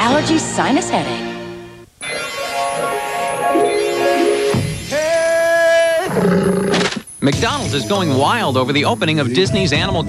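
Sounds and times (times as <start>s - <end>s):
high animal call: 4.9s - 7.0s
low animal roar: 5.9s - 7.0s.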